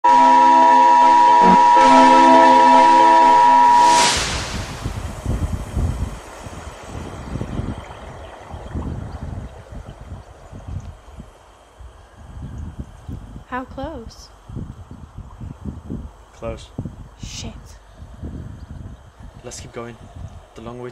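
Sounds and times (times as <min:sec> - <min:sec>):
electronic alert tone: 0:00.0 - 0:04.2
low rumbling noise: 0:00.0 - 0:20.8.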